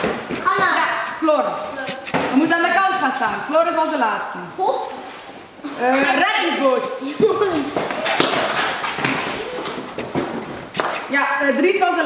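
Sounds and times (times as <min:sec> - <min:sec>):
scuffs and thumps on concrete floor: 0:00.0 - 0:03.0, 0:07.1 - 0:11.6.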